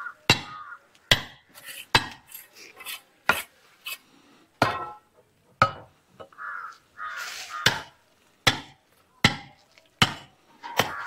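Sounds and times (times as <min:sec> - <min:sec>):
axe-like tool chopping stone: 0:00.3 - 0:02.3, 0:07.6 - 0:11.0.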